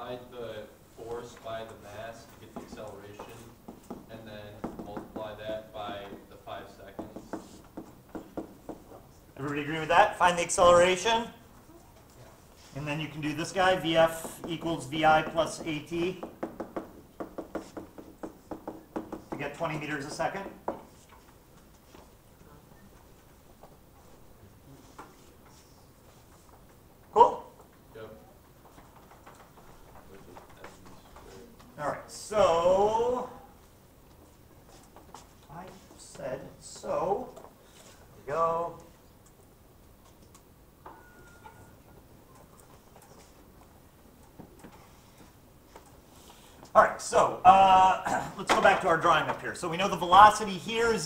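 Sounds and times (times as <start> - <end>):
stylus tapping on tablet screen: 14.2 - 19.5
faint clicks and ticks: 38.8 - 40.5.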